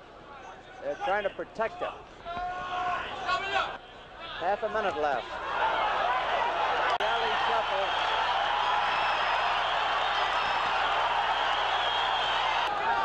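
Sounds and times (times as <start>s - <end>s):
crowd cheering and shouting: 2.2s - 4.4s, 5.1s - 13.0s.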